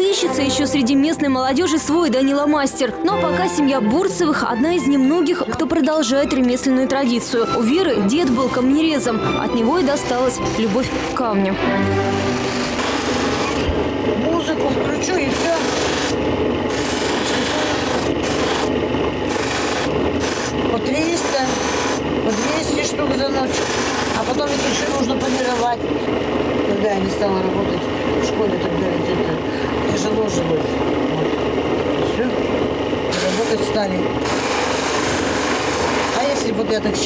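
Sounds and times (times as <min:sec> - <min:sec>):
grinding wheel grinding stone: 0:09.7 - 0:28.8, 0:32.9 - 0:37.0.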